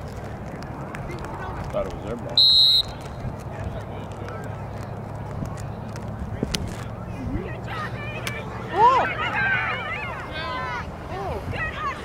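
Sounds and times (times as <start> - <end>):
low background noise: 0.0 - 12.0
distant players calling: 1.0 - 5.3.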